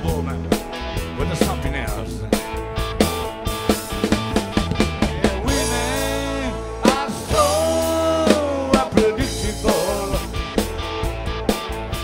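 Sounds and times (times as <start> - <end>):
steady bass: 0.0 - 12.0
drum kit hits: 1.4 - 12.0.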